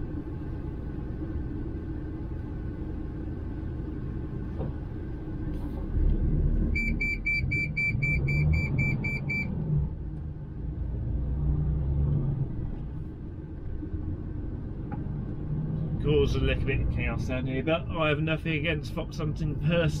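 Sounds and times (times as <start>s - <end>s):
truck diesel engine: 0.0s - 20.0s
high electronic beeps: 6.8s - 9.5s.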